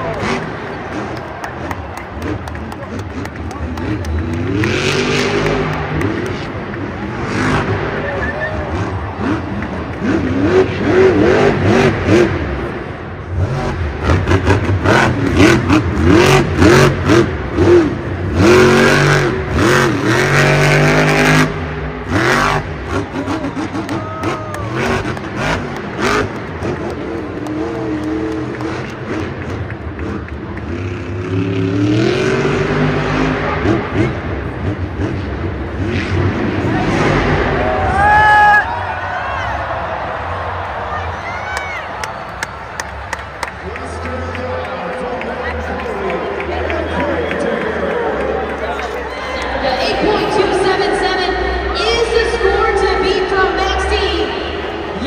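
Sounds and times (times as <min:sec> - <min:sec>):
monster truck engine revving: 0:00.0 - 0:55.0.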